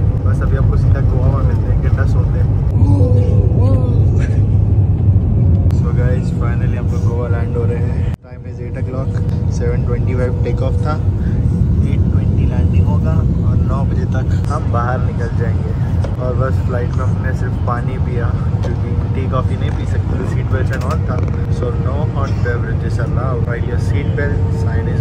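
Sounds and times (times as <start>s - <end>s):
jet engine rumble: 0.0s - 25.0s
voices talking: 5.6s - 25.0s.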